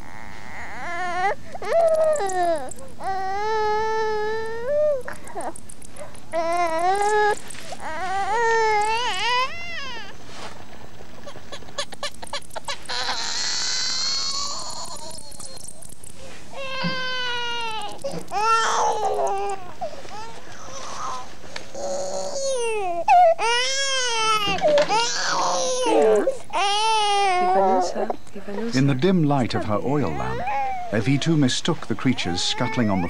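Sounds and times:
infant crying: 0.0s - 5.6s, 6.3s - 10.2s, 11.6s - 15.9s, 16.5s - 28.0s, 29.4s - 31.4s, 32.1s - 33.0s.

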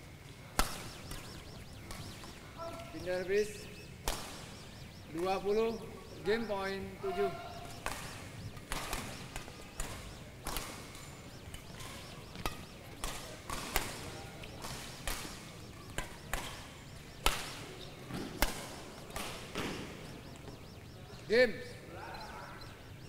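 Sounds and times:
racket striking shuttlecock: 0.6s - 2.0s, 7.7s - 20.0s.

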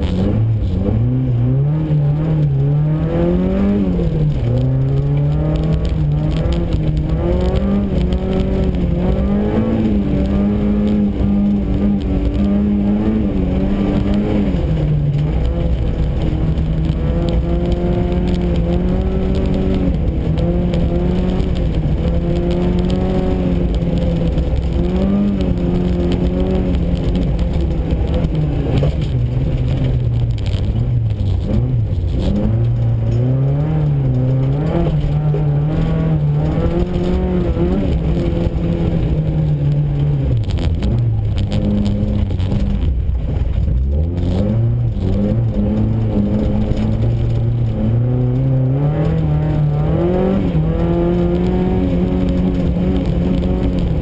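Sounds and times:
car engine revving: 0.0s - 54.0s
tyre and road noise: 0.0s - 54.0s.

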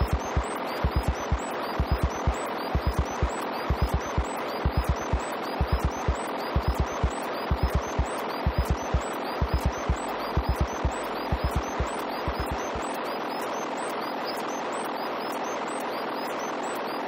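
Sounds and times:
kick drum pattern: 0.0s - 12.6s
high electronic chirps: 0.0s - 14.4s.

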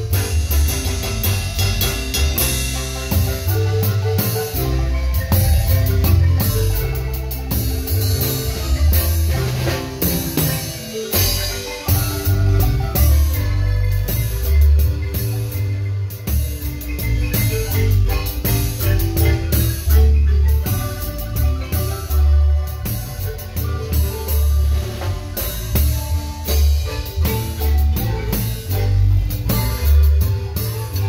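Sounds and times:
bass line: 0.0s - 31.0s
drum kit: 0.0s - 31.0s
marimba playing: 0.0s - 31.0s.

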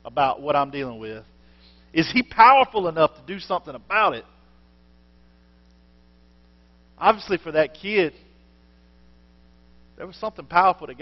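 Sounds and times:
faint electrical mains hum: 0.0s - 11.0s
person speaking: 7.0s - 8.3s, 10.0s - 11.0s.

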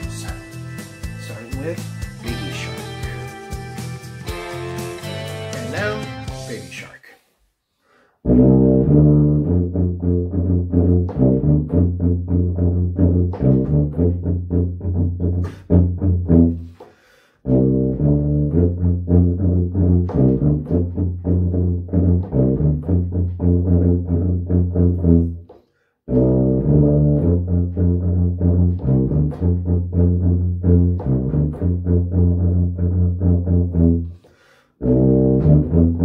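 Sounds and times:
tuba playing short notes: 0.0s - 6.6s, 8.2s - 16.7s, 17.4s - 25.4s, 26.1s - 34.2s, 34.8s - 36.0s.

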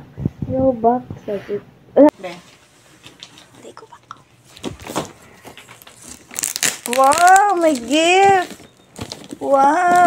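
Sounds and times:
wrapping paper crinkling: 4.4s - 10.0s.

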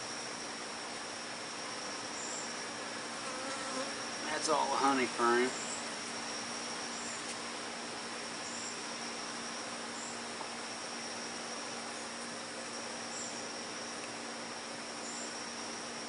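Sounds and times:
bees humming: 1.2s - 16.0s.

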